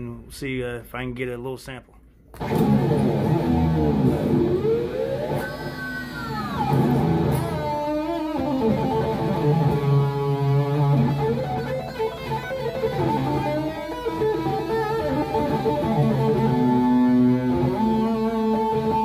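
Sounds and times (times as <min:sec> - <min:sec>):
electric guitar lead with vibrato: 0:02.4 - 0:19.0.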